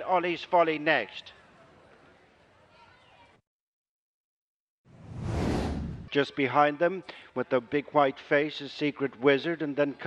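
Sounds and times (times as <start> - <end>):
whoosh sound effect: 4.9 - 6.1.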